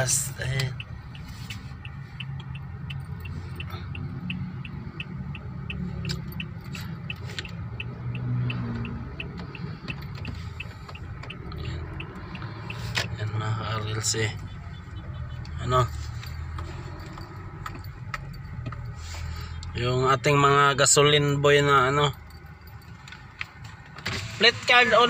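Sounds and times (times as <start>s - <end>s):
turn signal ticking: 0.0s - 24.0s
car engine and tyres rumbling: 0.0s - 25.0s.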